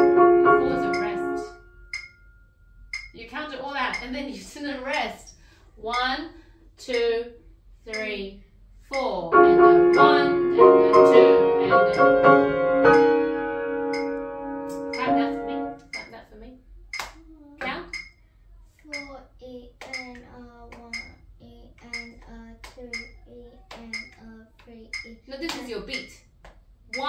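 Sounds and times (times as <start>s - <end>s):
grand piano notes and chords: 0.0s - 1.9s, 9.3s - 16.0s
hand claps in steady beat: 17.0s - 18.0s, 19.8s - 21.1s, 23.7s - 24.2s, 25.4s - 27.0s
child counting: 17.2s - 17.9s, 18.7s - 25.3s.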